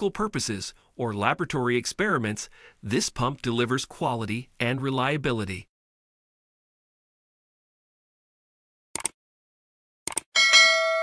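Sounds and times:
bell ding: 10.4 - 11.0.

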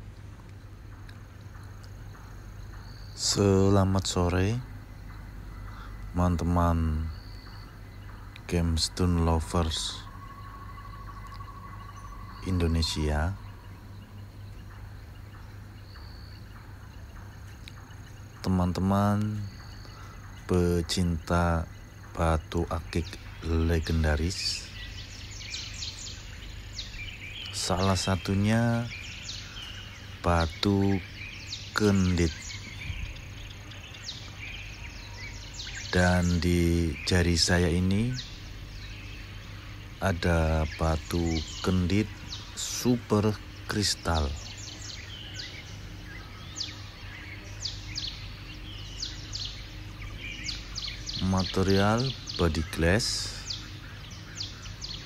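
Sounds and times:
low background rumble: 0.0 - 55.0
small birds chirping: 0.0 - 55.0
steady low hum: 0.0 - 55.0.

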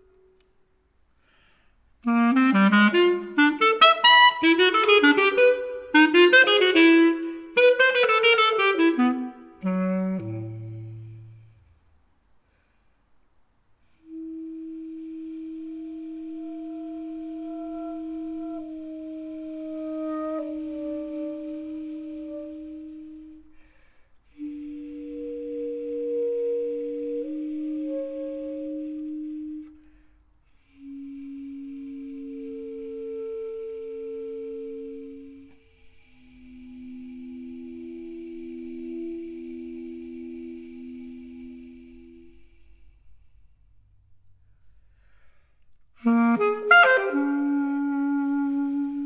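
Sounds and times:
basset horn held tones: 1.2 - 11.7, 13.8 - 43.6, 45.9 - 49.0
basset horn long soft note: 13.9 - 30.0.

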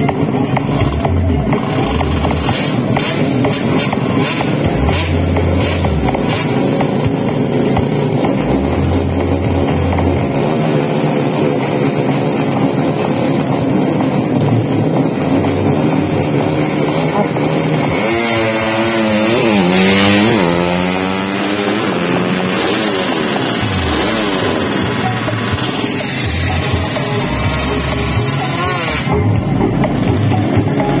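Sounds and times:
loudspeaker music: 0.0 - 13.3, 14.0 - 31.0
background engines: 0.0 - 31.0
motorcycle accelerating hard: 0.0 - 31.0.

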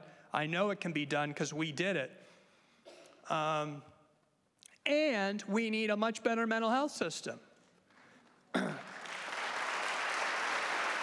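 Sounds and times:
audience applauding: 8.8 - 11.0.

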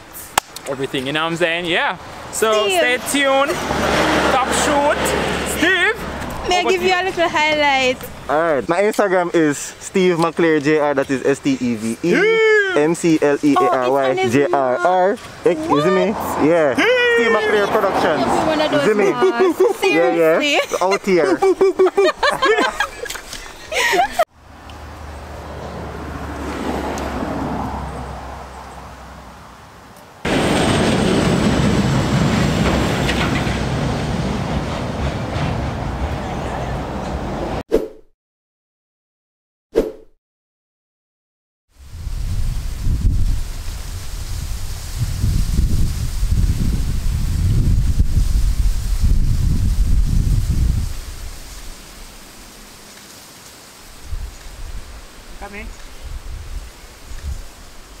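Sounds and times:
traffic rumble and hiss: 0.0 - 37.6, 41.8 - 58.0
vehicle passing: 1.2 - 8.7, 13.6 - 20.8, 23.2 - 37.6
wind buffeting microphone: 14.2 - 19.8, 41.8 - 52.2, 54.0 - 57.9.

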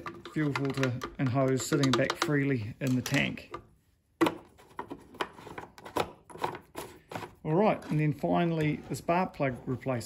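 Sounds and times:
plastic cap screwing clicks: 0.0 - 6.8.

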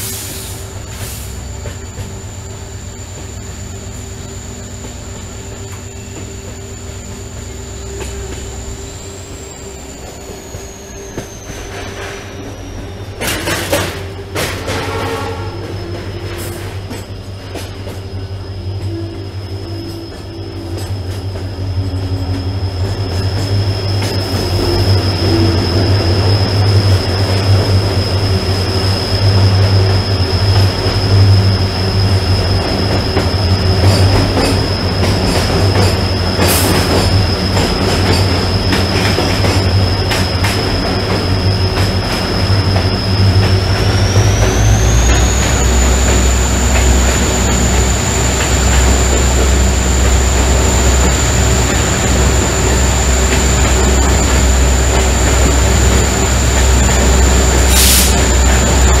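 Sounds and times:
train wheels squealing: 0.0 - 59.0
deep rolling rumble: 23.5 - 59.0.

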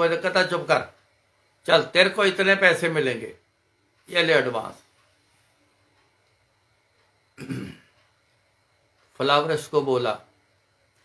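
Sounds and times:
man clearing his throat: 7.4 - 8.0.

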